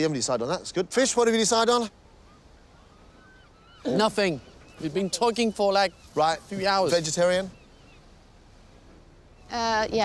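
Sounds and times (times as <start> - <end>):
distant bird whistles: 1.8 - 10.0.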